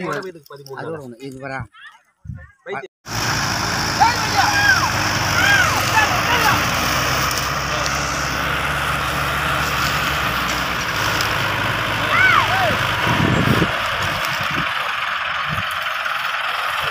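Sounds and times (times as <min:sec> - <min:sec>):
tractor engine running: 0:03.1 - 0:16.9.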